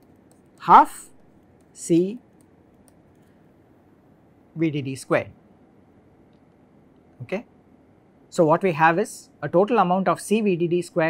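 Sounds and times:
person speaking: 0.2s - 3.2s, 4.5s - 5.4s, 7.1s - 7.6s, 8.3s - 11.0s.

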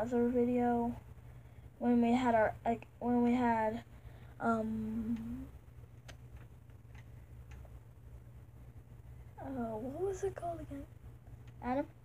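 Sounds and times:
low steady hum: 0.0s - 12.0s
faint irregular clicks: 4.9s - 8.2s, 11.2s - 11.8s.

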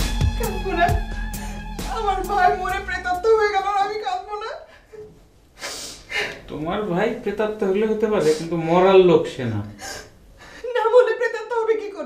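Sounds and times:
person speaking: 0.4s - 4.7s, 6.4s - 12.0s.

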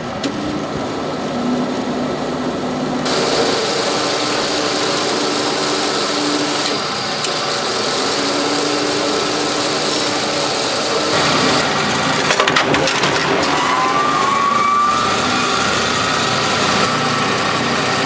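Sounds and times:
loud hissing whir: 0.0s - 12.3s, 13.4s - 18.0s
sheet metal shear humming: 0.0s - 18.0s.

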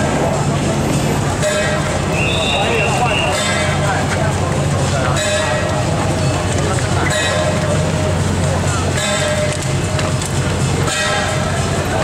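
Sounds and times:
low street procession rumble: 0.0s - 12.0s
sustained horn-like tone: 10.8s - 11.5s.

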